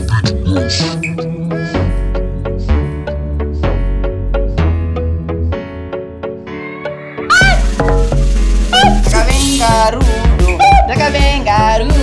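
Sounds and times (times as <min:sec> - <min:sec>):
high bending vocal-like cries: 0:06.4 - 0:10.7.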